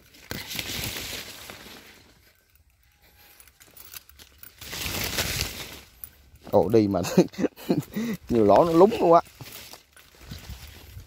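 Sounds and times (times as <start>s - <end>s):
leaves and branches rustling: 0.0s - 11.0s.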